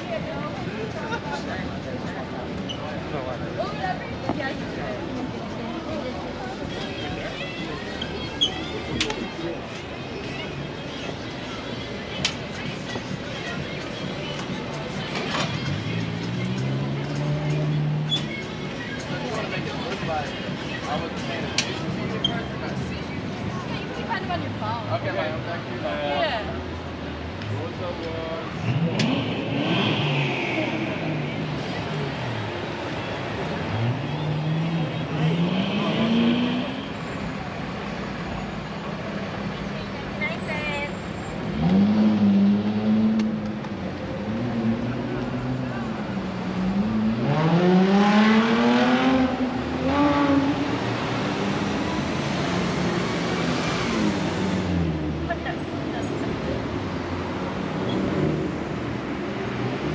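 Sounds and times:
car engines accelerating past: 28.5s - 32.5s, 33.2s - 36.9s, 41.4s - 59.9s.

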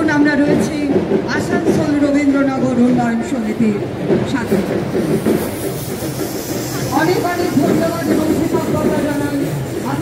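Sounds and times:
people's voices: 0.0s - 10.0s
train rumbling and rattling: 0.0s - 10.0s.

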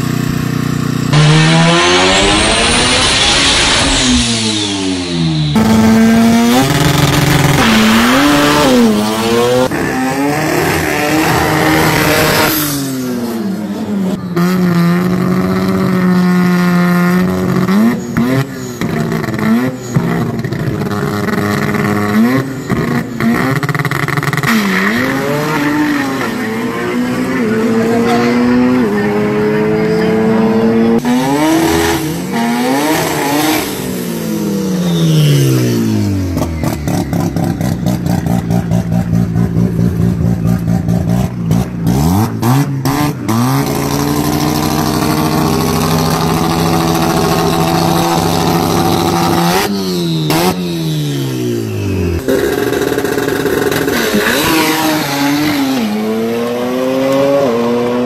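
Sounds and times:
engine stuttering rapidly: 0.0s - 12.6s, 43.5s - 50.6s, 52.2s - 55.6s
race car engines revving: 0.0s - 58.0s.

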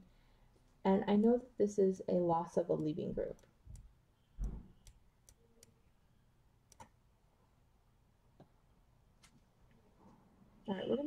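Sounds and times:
stylus ticks on tablet screen: 2.5s - 5.8s, 6.7s - 7.0s
soft low thump: 4.4s - 4.7s.

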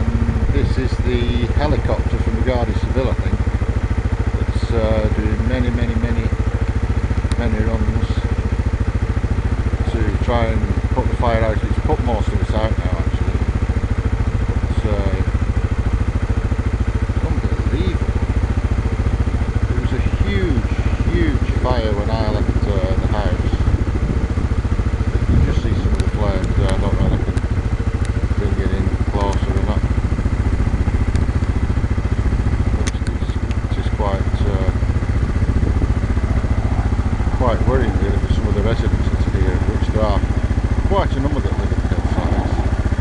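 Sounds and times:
people talking: 0.0s - 3.4s, 4.4s - 6.4s, 7.3s - 8.3s, 9.8s - 13.3s, 14.7s - 15.3s, 17.2s - 18.1s, 19.6s - 23.8s, 25.2s - 27.4s, 28.3s - 29.8s, 32.7s - 34.8s, 37.3s - 42.6s
low pulsing engine drone: 0.0s - 43.0s.

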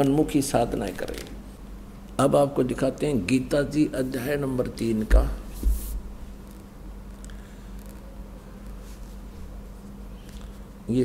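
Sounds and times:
man speaking: 0.0s - 1.3s, 2.2s - 5.4s
low electrical hum: 0.0s - 11.0s.

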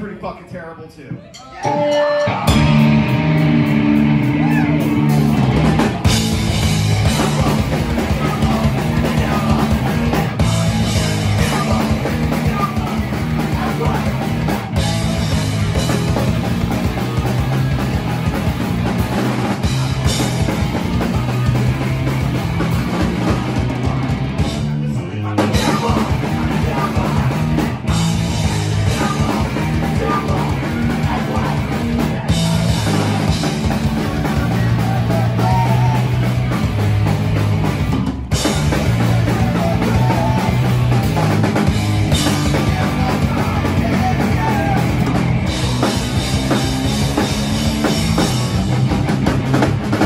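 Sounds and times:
bass guitar: 1.1s - 50.0s
drum kit: 1.3s - 50.0s
electric guitars: 1.4s - 50.0s
person singing: 7.0s - 15.4s, 22.6s - 36.8s, 38.6s - 41.4s, 42.1s - 46.3s.

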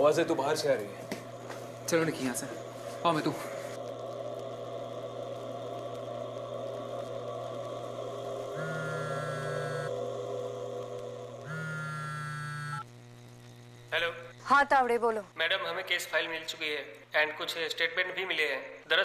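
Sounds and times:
low drone of background music: 3.8s - 11.7s
mobile phone ringing: 8.6s - 9.9s, 11.5s - 12.8s.

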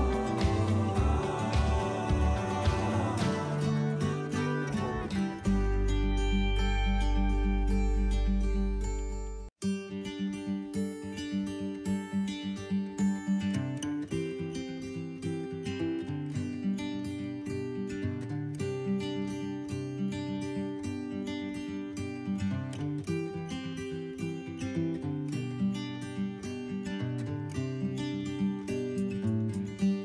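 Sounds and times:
plucked acoustic guitar music: 0.0s - 30.0s.

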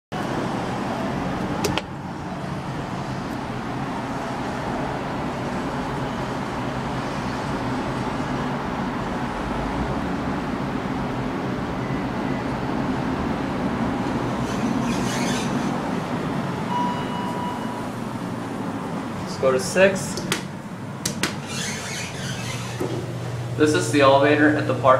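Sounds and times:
traffic and ventilation rumble: 0.1s - 24.9s
elevator arrival chime: 16.6s - 18.2s.

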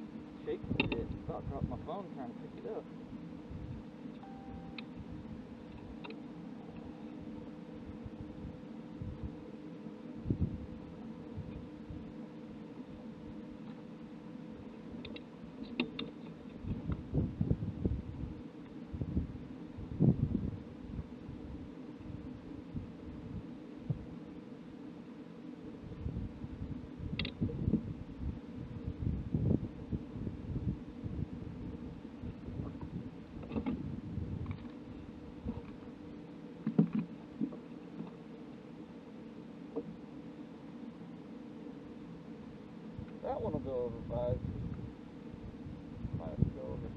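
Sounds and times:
steady low hum: 0.0s - 46.9s
low thumps in a boat: 36.6s - 38.2s.

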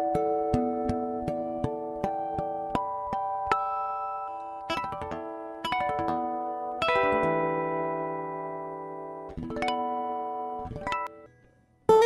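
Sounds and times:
ringing guitar chords: 0.0s - 12.0s.

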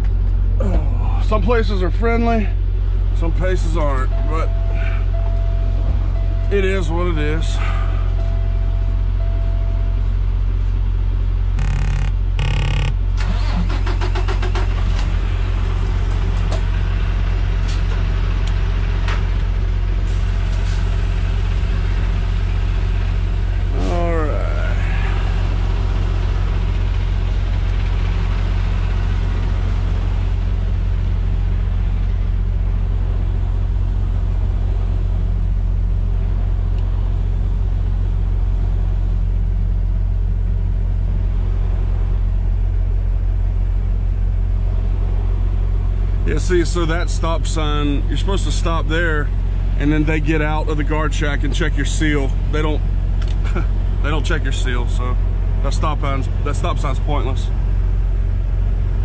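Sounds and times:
truck diesel engine droning: 0.0s - 59.0s.

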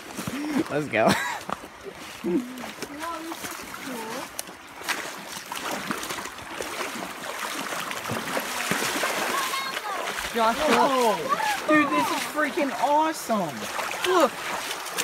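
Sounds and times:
creek water rushing: 0.0s - 15.0s
footsteps: 0.0s - 15.0s
faint voices: 9.3s - 14.5s.

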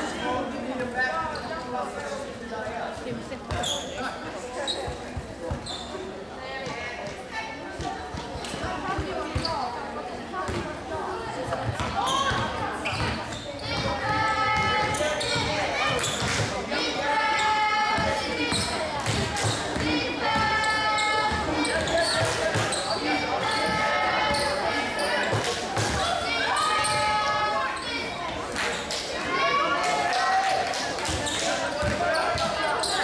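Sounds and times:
voices calling out echoing: 0.0s - 33.0s
basketball bouncing on floor: 31.8s - 32.5s.

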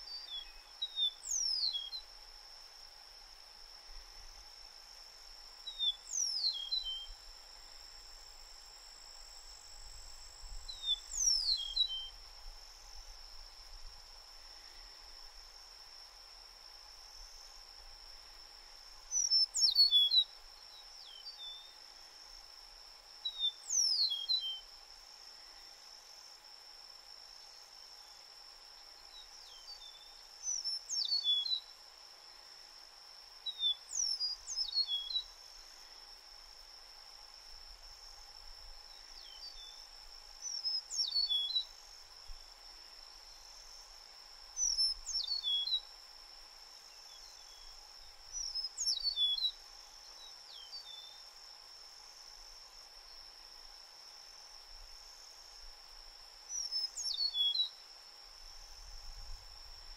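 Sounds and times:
meadowlark whistling songs: 0.0s - 2.2s, 5.6s - 13.8s, 18.3s - 21.9s, 23.2s - 24.8s, 28.8s - 31.8s, 33.4s - 35.7s, 38.6s - 46.0s, 46.8s - 51.4s, 56.4s - 57.9s.

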